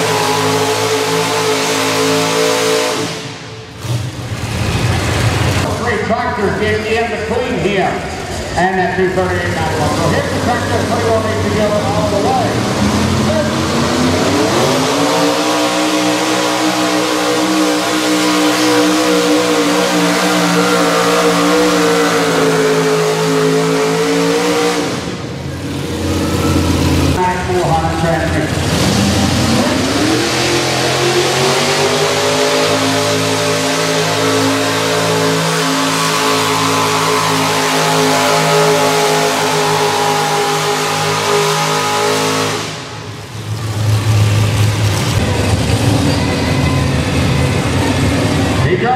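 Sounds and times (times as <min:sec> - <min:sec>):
tractor engine at high revs: 0:00.0 - 0:05.9, 0:09.2 - 0:48.7.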